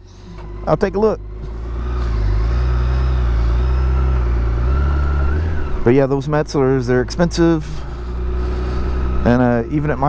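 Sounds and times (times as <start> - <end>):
motorcycle engine low drone: 0.0 - 10.0.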